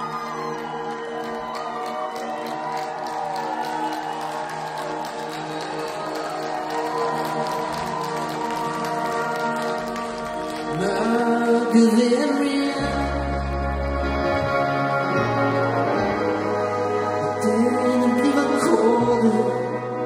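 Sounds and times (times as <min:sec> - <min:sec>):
lead vocal singing: 0:10.6 - 0:14.0, 0:16.2 - 0:20.0.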